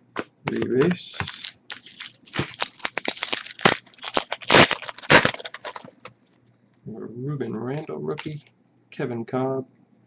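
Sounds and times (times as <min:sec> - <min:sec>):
foil wrapper crinkling: 0:00.5 - 0:06.2.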